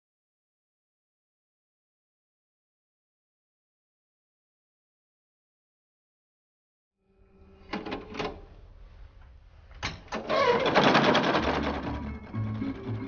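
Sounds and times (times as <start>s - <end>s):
fast mechanical clattering: 10.2s - 12.1s
music with low steady notes: 11.2s - 13.0s.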